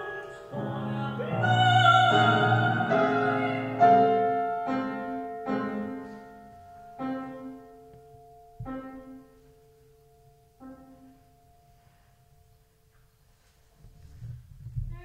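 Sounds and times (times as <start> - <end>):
grand piano chords: 0.0 - 13.3.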